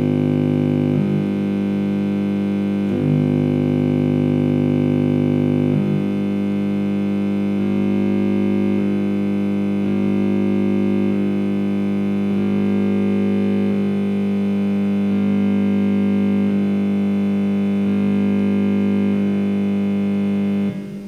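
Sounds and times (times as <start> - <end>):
synthesizer drone with shifting notes: 0.0 - 4.0, 4.6 - 14.0.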